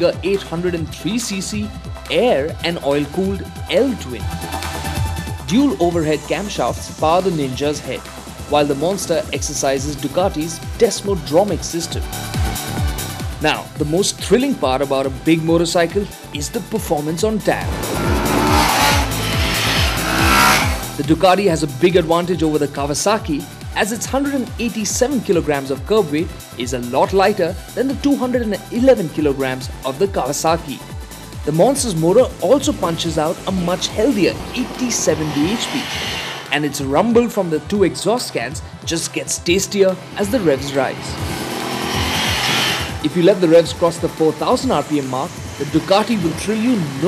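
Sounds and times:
background music with falling bass: 0:00.0 - 0:47.0
motorcycle revving hard: 0:17.2 - 0:21.1, 0:31.6 - 0:36.5, 0:39.9 - 0:47.0.

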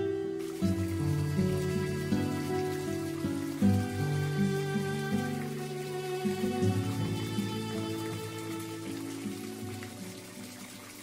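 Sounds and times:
slow sad music: 0:00.0 - 0:11.0
tap water trickling into basin: 0:00.4 - 0:11.0.

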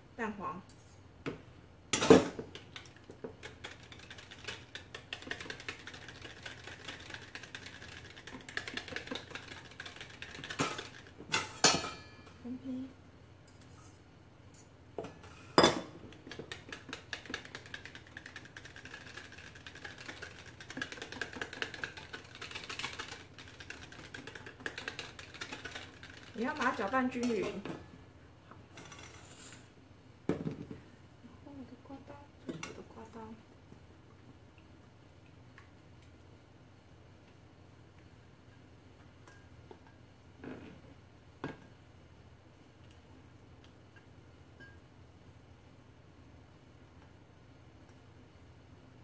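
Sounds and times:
whisk clicking against bowl: 0:16.2 - 0:26.7.

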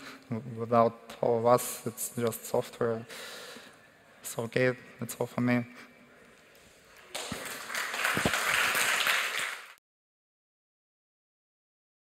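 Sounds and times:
audience applauding: 0:07.0 - 0:09.8.

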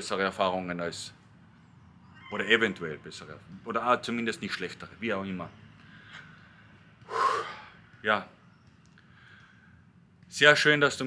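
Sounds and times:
man breathing sharply: 0:05.8 - 0:07.8, 0:09.0 - 0:09.9.

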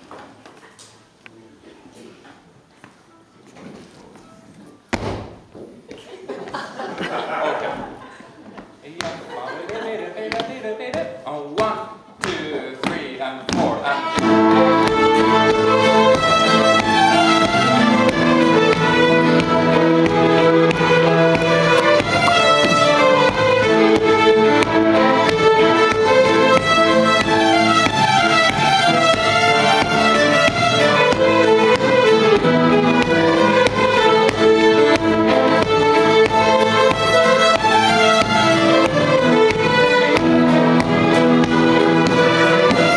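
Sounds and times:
sharp knock: 0:04.9 - 0:05.4
fiddles playing a tune: 0:13.8 - 0:42.9.

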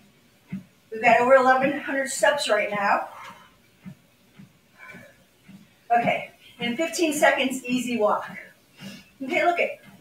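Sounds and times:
footfalls on treadmill belt: 0:00.0 - 0:10.0
woman's voice: 0:00.9 - 0:03.3, 0:05.9 - 0:08.5, 0:09.2 - 0:09.9.

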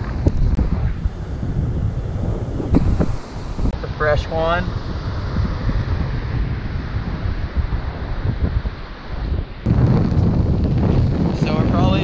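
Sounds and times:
surf: 0:00.0 - 0:12.0
wind buffeting microphone: 0:00.0 - 0:12.0.

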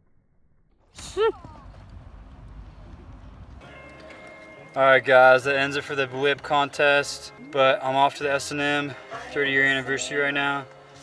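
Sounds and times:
outdoor low rumble: 0:00.0 - 0:03.6.

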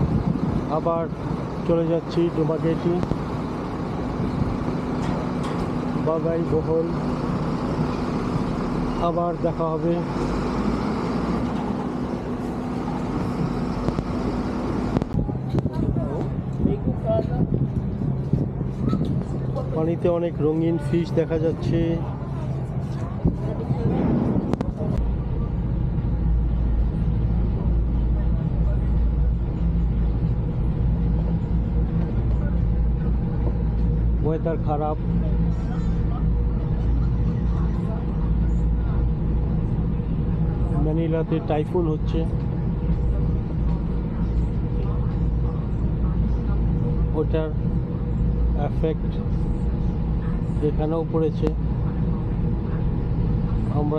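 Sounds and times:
diesel truck engine humming: 0:00.0 - 0:53.9
road traffic noise: 0:00.0 - 0:53.9.

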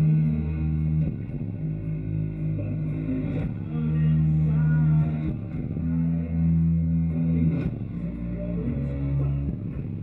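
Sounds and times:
rock band guitar and bass chord: 0:00.0 - 0:10.0.

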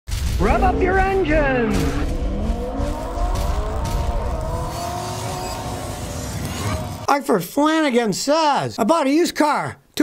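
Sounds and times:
car engine revving: 0:00.4 - 0:07.1.

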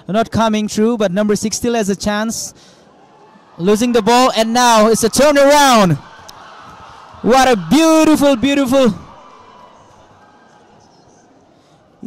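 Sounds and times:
commentator voice echoing: 0:00.0 - 0:02.6, 0:03.6 - 0:06.0, 0:07.2 - 0:09.1
stadium background noise: 0:00.0 - 0:12.0.

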